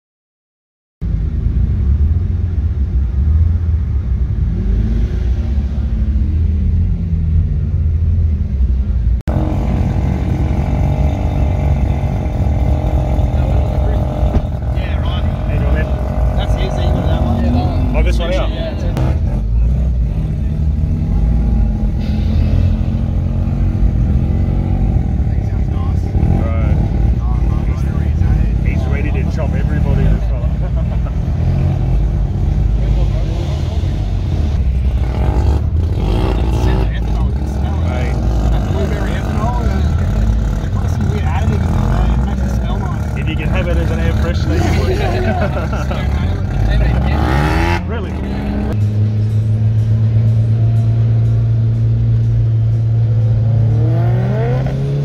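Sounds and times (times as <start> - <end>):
car engines rumbling: 1.0 - 55.0
people talking: 11.1 - 20.8, 25.1 - 31.4, 32.4 - 34.3, 36.0 - 48.8.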